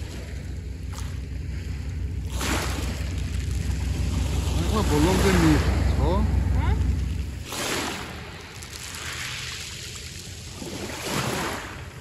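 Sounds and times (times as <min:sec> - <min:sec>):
waves washing over pebbles: 0:00.0 - 0:12.0.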